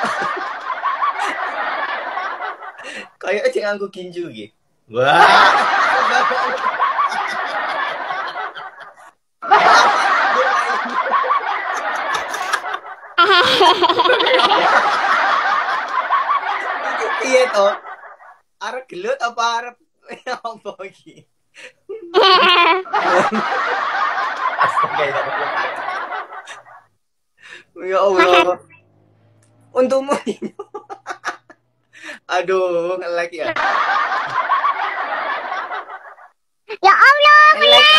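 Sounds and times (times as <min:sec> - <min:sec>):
man and woman laughing: 0:00.0 - 0:03.1, 0:05.0 - 0:18.4, 0:21.6 - 0:26.8, 0:27.5 - 0:28.6, 0:30.1 - 0:32.1, 0:33.4 - 0:36.3
high-pitched shrieking laugh: 0:11.8 - 0:14.7, 0:22.1 - 0:23.0.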